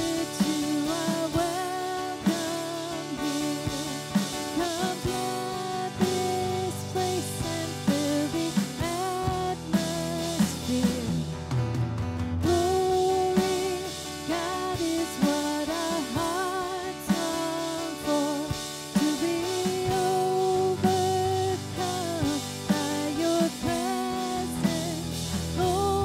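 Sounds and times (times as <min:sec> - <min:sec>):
woman singing worship song: 0:00.0 - 0:11.4, 0:12.4 - 0:26.0
drum kit beat: 0:00.0 - 0:26.0.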